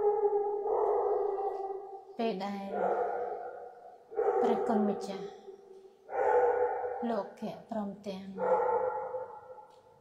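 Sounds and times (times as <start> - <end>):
woman chanting: 2.2 - 2.9, 4.4 - 5.4, 7.0 - 8.5.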